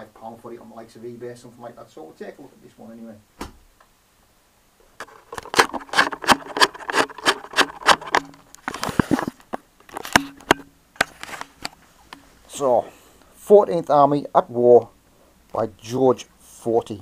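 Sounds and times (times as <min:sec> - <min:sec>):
handling clicks knocks and rustles: 0:05.0 - 0:12.2.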